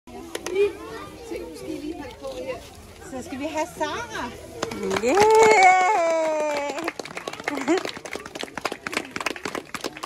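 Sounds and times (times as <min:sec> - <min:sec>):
young children chattering: 0:00.1 - 0:05.3.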